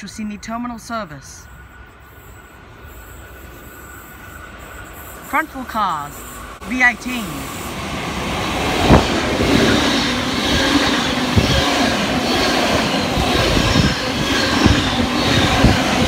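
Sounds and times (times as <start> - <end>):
train passing on rails: 0.0 - 16.0
train car thuds: 8.8 - 9.7.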